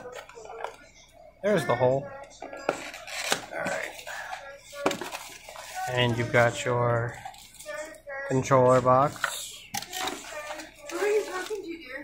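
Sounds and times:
plastic bag crinkling: 9.0 - 12.0.

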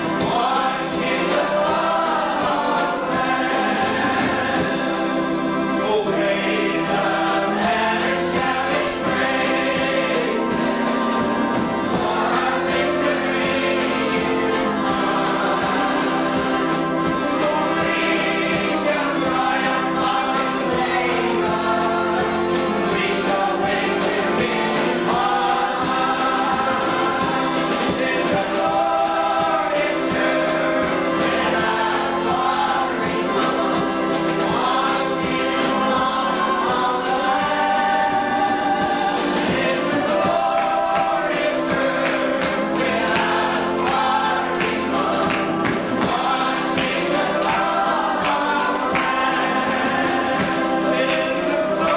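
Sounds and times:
choir singing a hymn: 0.0 - 51.9.

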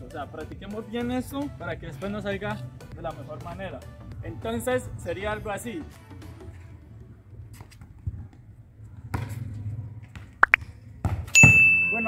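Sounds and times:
background music: 0.0 - 7.7
football kicked on concrete: 10.0 - 11.8
bell ding: 11.4 - 12.0.

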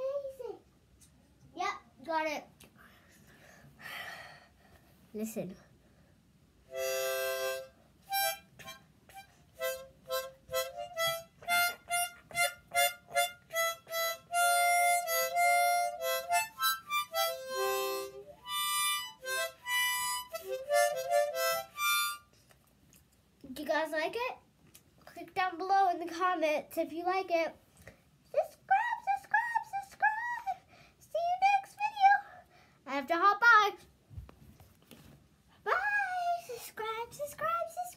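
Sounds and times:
harmonica playing short phrases: 6.7 - 22.3.

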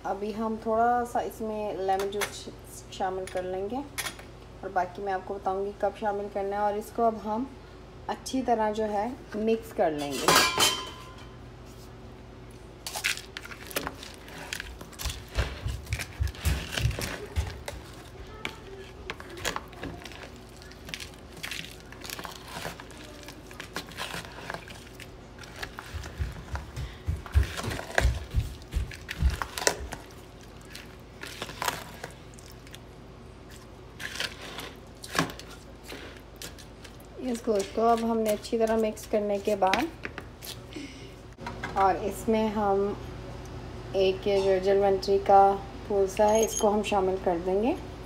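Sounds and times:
spatula stirring wet meat in bowl: 13.3 - 32.8, 33.4 - 40.5.

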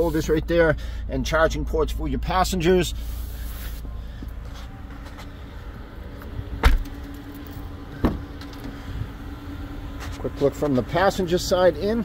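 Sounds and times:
car door shutting with thump: 6.6 - 7.1, 7.9 - 8.7.

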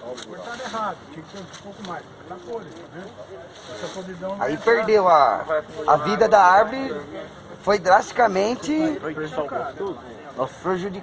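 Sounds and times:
background voices talking: 0.0 - 11.0.

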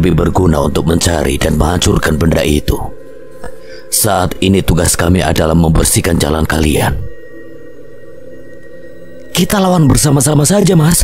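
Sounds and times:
music of low held tones: 0.0 - 11.0.

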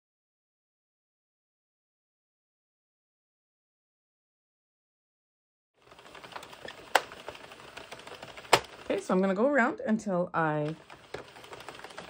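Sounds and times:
knitting machine needles clattering: 5.8 - 9.7, 10.4 - 12.0.

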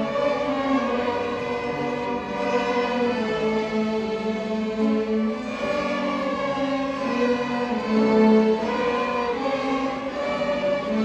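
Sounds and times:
string orchestra playing held chords: 0.0 - 11.0.

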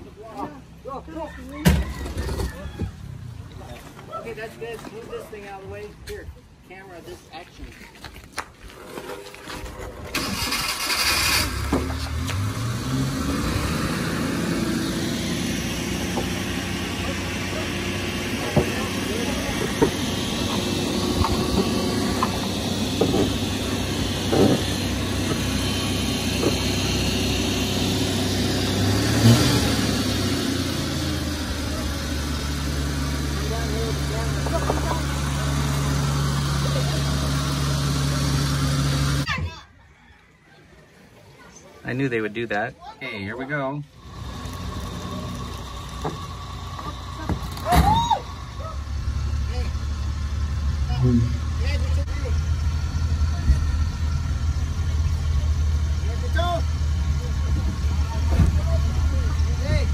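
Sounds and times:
truck engine starting and running: 8.8 - 39.6, 41.9 - 59.9.

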